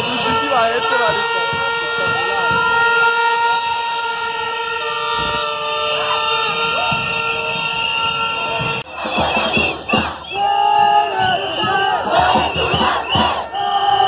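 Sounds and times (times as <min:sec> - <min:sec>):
crowd shouting: 0:00.0 - 0:14.0
voices of marching crowd: 0:00.0 - 0:14.0.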